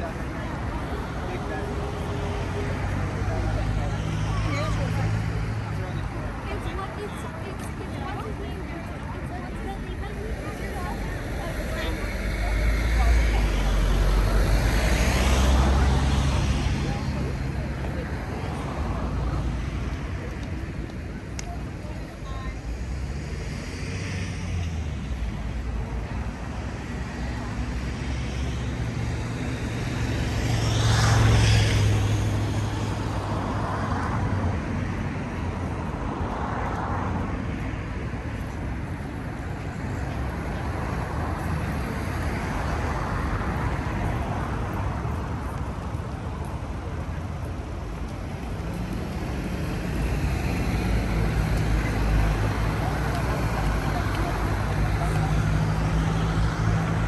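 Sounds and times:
vehicle passing: 0.0 - 21.2, 22.7 - 37.4, 38.4 - 57.0
people talking: 0.0 - 23.9, 39.7 - 57.0
road traffic: 0.0 - 57.0.

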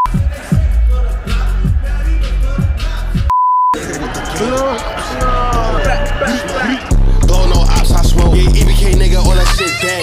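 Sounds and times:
music: 0.0 - 10.0
high-pitched censor bleep: 3.3 - 3.8
voices: 3.8 - 10.0.

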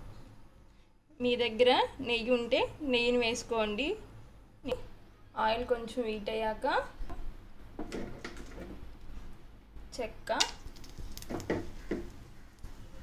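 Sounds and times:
woman speaking: 4.6 - 7.0, 9.9 - 10.5
spices clicking in a pan: 10.4 - 12.7.

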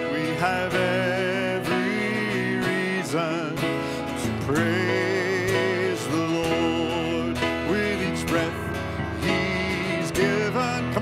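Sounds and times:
acoustic guitar: 0.0 - 11.0
man singing: 0.0 - 11.0.

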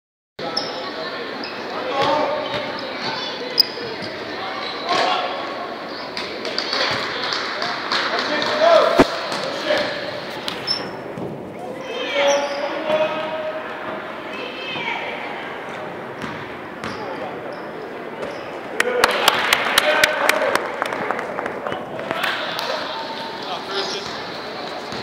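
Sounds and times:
sneaker squeaks: 0.4 - 5.1, 10.2 - 11.4, 12.0 - 13.2, 16.2 - 18.6
spectators talking and calling out: 0.4 - 25.0
basketball bouncing: 16.2 - 17.0.

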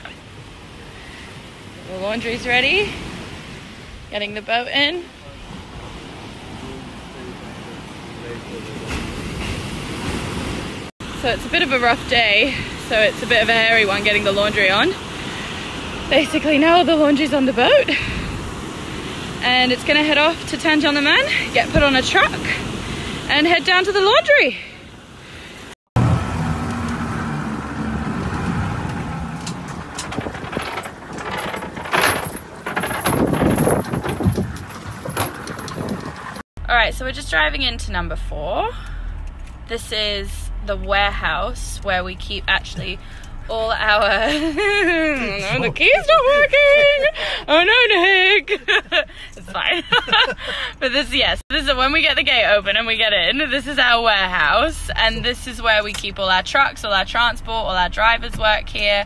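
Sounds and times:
wind: 0.0 - 59.0
surf: 0.8 - 35.3
hull knocks and rattles: 28.2 - 36.4.

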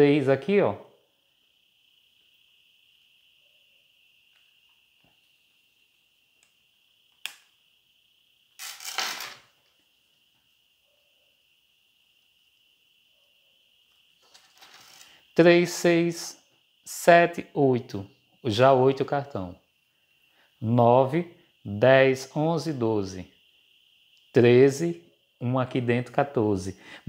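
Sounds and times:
faint high hiss: 0.0 - 27.0.

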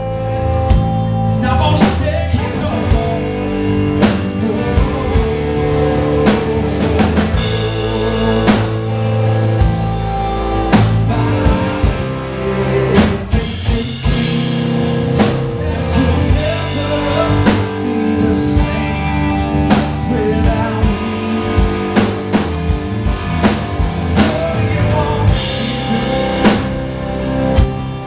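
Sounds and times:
blues band playing: 0.0 - 28.0
drum kit steady beat: 0.0 - 28.0.

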